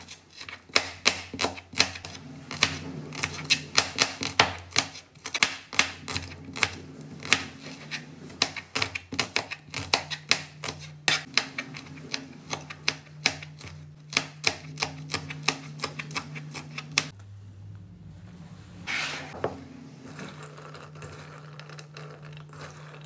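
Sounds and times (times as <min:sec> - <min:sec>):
knife chopping on plastic board: 0:00.1 - 0:17.1.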